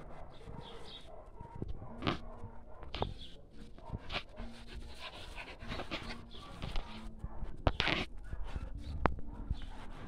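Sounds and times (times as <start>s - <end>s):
dogs panting: 0.0s - 10.0s.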